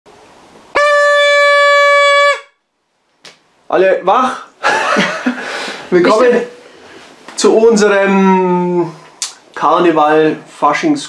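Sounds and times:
party horn blare: 0.7s - 2.6s.

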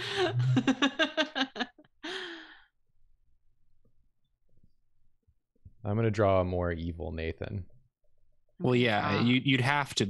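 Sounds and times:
person sighing: 0.0s - 0.7s.

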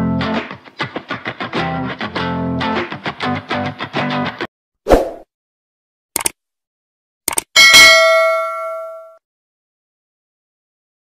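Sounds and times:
double mouse click: 6.2s - 6.4s, 7.3s - 7.5s
bright bell ding: 7.6s - 9.2s.

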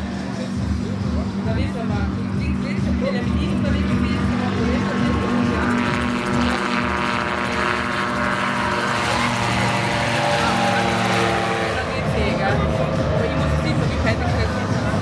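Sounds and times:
propeller engine droning: 0.0s - 15.0s.

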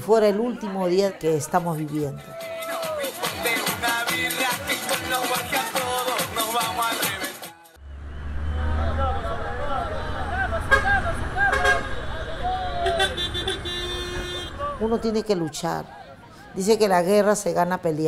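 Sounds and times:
salsa music: 0.0s - 7.8s
minibus engine rumble: 7.7s - 16.6s
voices: 8.4s - 18.0s
vehicle horn toot: 10.6s - 14.6s.

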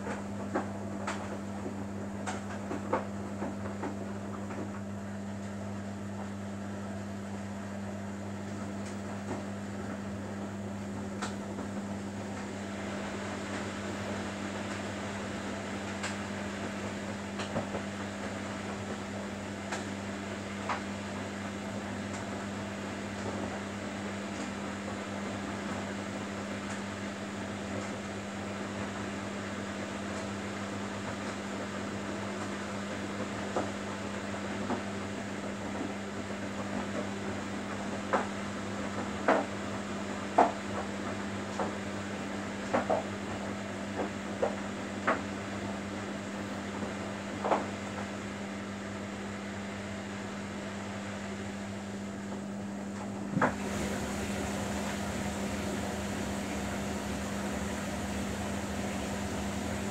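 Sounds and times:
washing machine motor hum: 0.0s - 59.9s
laundry tumbling and swishing: 53.5s - 59.9s.

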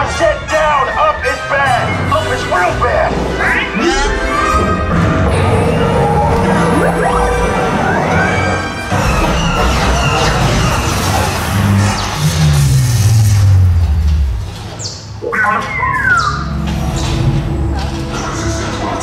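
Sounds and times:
soundtrack music: 0.0s - 19.0s
sweeping sci-fi tones: 3.8s - 14.6s
deep falling tone: 4.0s - 14.8s.

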